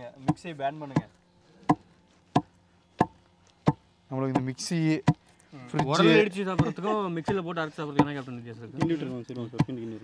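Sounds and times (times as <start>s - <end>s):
pestle pounding in stone mortar: 0.2s - 5.2s, 5.8s - 9.8s.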